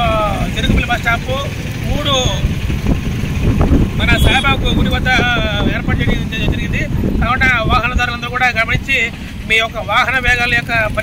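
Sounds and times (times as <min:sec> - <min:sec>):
road traffic rumble: 0:00.0 - 0:11.0
wind buffeting microphone: 0:01.8 - 0:09.0
man's voice: 0:04.0 - 0:11.0.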